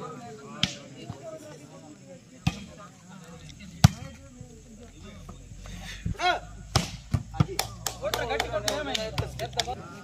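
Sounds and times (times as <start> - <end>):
spectators chattering: 0.0 - 10.0
volleyball smack: 6.7 - 8.2.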